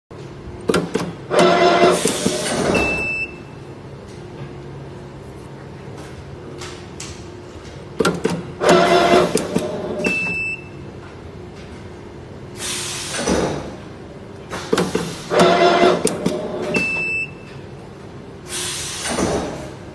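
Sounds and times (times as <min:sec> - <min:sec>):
tape wrapping machine motor: 0:00.7 - 0:03.0, 0:08.1 - 0:10.0, 0:14.6 - 0:16.8.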